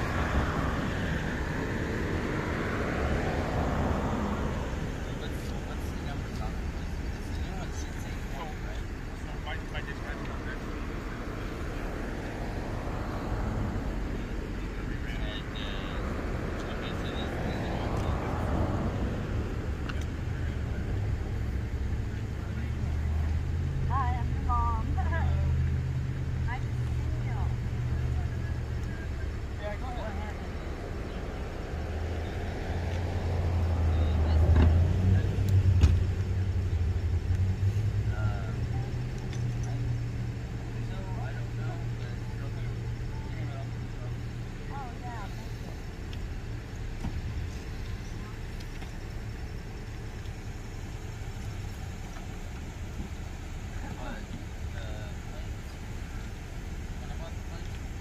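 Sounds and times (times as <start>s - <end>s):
car engines idling: 0.0s - 58.0s
faint distant voices: 0.0s - 58.0s
vehicle approaching: 0.0s - 58.0s.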